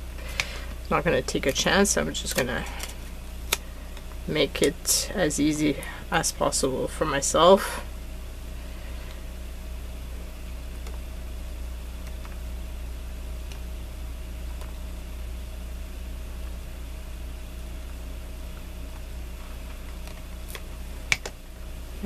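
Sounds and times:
room hum and hiss: 0:00.0 - 0:22.0.

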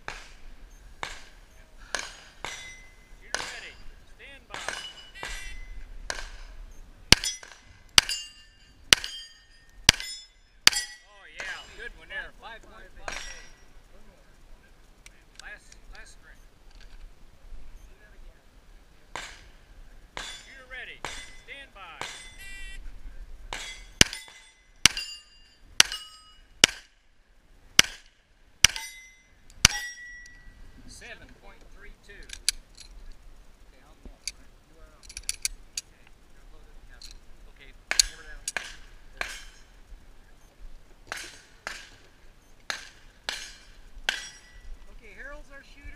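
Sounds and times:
sharp metallic clicks: 0:01.0 - 0:11.9, 0:27.8 - 0:33.2, 0:34.2 - 0:36.2, 0:37.0 - 0:39.8
steel target ringing: 0:01.9 - 0:06.4, 0:07.1 - 0:12.0, 0:13.1 - 0:13.8, 0:20.2 - 0:22.7, 0:23.5 - 0:26.9, 0:27.8 - 0:30.6, 0:42.7 - 0:44.7.

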